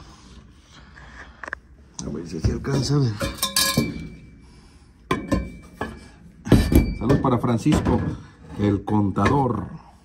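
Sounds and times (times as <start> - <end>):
metal objects clinking: 3.2 - 4.3.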